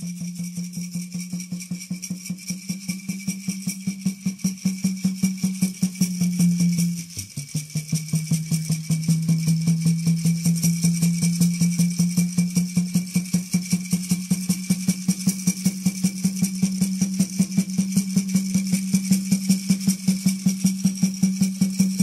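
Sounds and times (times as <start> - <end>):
gourd rattle shaking: 0.0 - 22.0.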